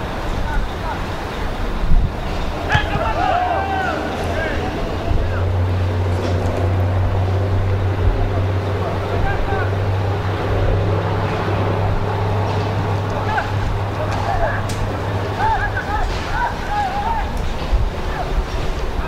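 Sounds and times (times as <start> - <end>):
distant players shouting: 0.0 - 19.0
low hum and rumble: 0.0 - 19.0.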